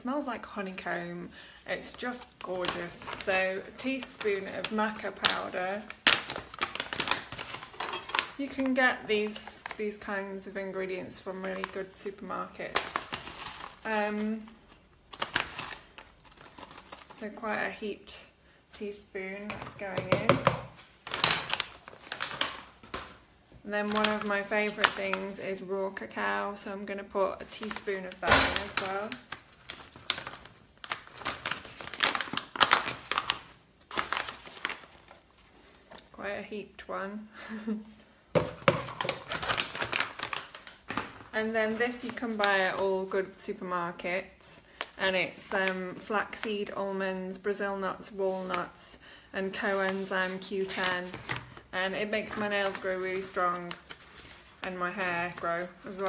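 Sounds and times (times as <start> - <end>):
pouch crinkling: 4.1 - 8.4, 12.7 - 17.2, 28.6 - 35.5, 38.8 - 42.9.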